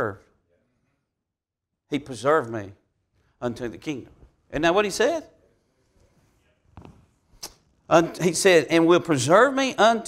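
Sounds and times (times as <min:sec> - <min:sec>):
man speaking: 0:00.0 - 0:00.4, 0:01.9 - 0:02.8, 0:03.4 - 0:05.4, 0:07.9 - 0:10.0.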